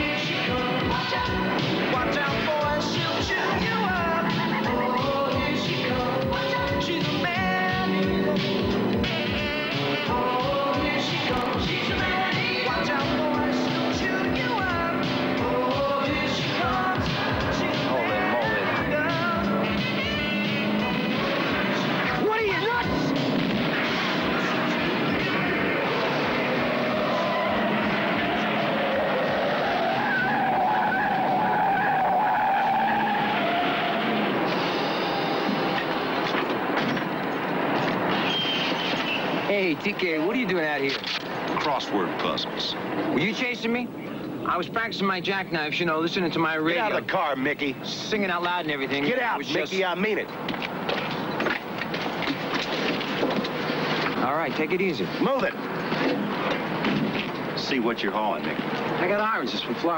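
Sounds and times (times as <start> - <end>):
vehicles driving hard on gravel: 0.0 - 59.9
tyres squealing: 1.4 - 44.1, 48.5 - 59.9.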